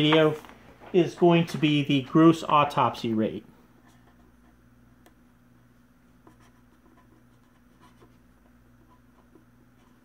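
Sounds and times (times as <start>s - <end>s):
steady low hum: 0.0s - 10.0s
pen scratching on paper: 6.2s - 8.2s.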